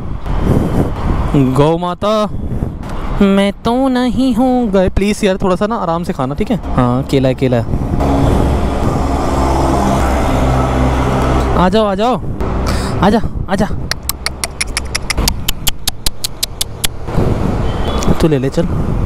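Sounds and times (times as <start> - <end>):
vehicle engine humming: 6.0 - 13.1, 13.8 - 18.0
person speaking: 11.5 - 17.0.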